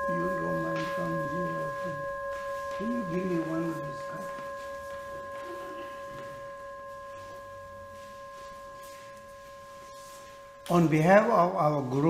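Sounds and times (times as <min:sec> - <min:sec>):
singing bowl ringing: 0:00.0 - 0:12.0.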